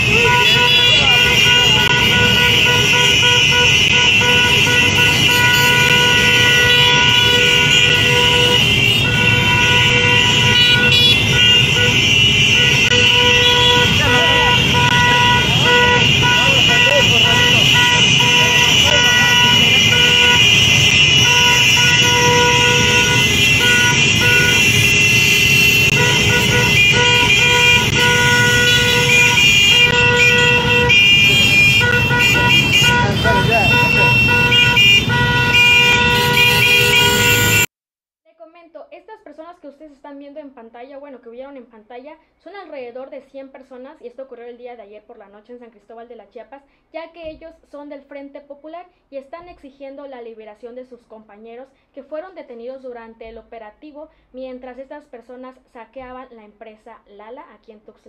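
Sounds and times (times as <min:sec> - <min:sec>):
vehicle horn sounding: 0:00.0 - 0:37.7.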